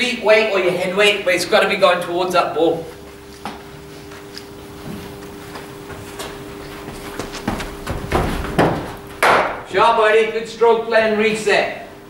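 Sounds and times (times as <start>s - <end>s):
steady hum: 0.0s - 12.0s
footsteps on artificial turf: 2.8s - 9.1s.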